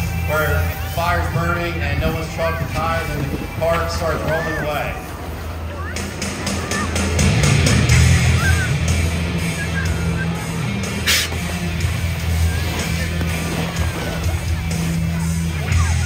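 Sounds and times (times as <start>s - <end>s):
diesel pump engine running: 0.0s - 16.0s
short burst of hiss: 11.0s - 11.4s.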